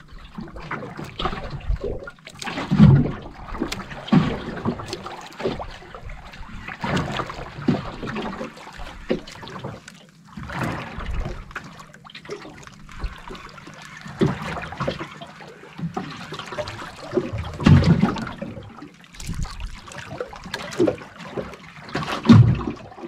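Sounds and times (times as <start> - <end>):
water slapping against boat hull: 0.0 - 23.0.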